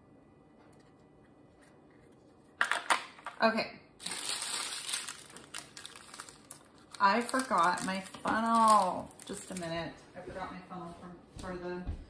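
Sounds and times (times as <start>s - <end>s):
plastic bags crinkling: 4.0s - 9.9s.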